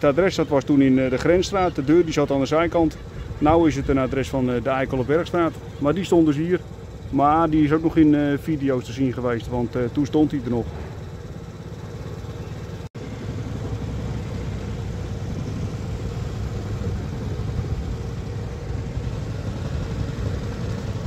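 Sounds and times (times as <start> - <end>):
motorbike engine running: 0.0 - 21.0.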